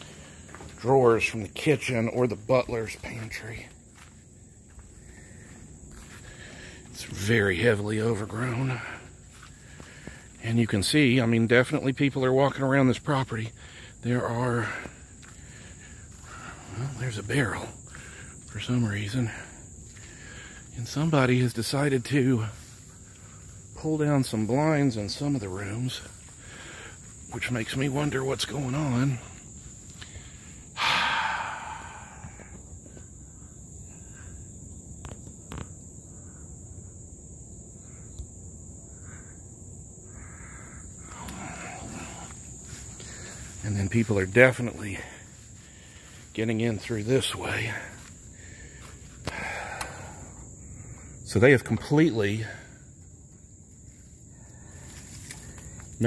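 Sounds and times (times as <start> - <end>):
footsteps through undergrowth: 0.0 - 1.4, 2.0 - 7.6, 8.2 - 10.5, 14.6 - 30.6, 41.0 - 50.0, 53.2 - 56.0
crickets chirping: 0.0 - 56.0
breathy exhale: 30.0 - 32.6, 48.4 - 51.1.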